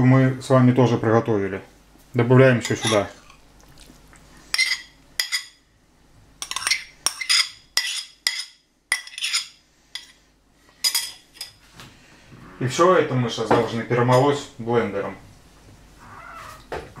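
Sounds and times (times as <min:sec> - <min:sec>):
metal spoon scraping ceramic bowl: 0:02.6 - 0:03.2, 0:04.5 - 0:05.5, 0:06.4 - 0:10.1.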